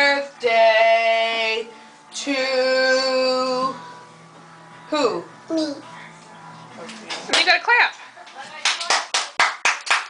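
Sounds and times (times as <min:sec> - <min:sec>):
child clapping hands: 0:08.6 - 0:10.0.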